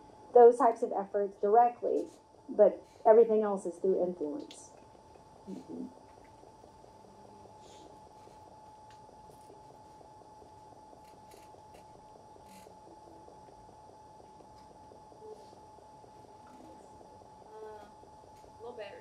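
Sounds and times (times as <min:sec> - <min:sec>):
faint high-pitched hum: 0:00.0 - 0:19.0.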